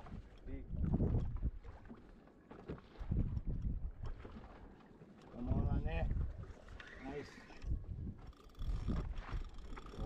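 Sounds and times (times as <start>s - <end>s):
wind rumble on microphone: 0.0s - 1.8s, 3.0s - 4.3s, 5.4s - 6.6s, 7.6s - 10.0s.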